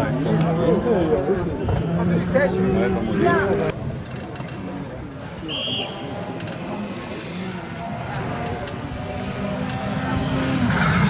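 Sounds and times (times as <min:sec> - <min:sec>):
spectators talking: 0:00.0 - 0:11.0
faint rally car engine: 0:06.0 - 0:11.0.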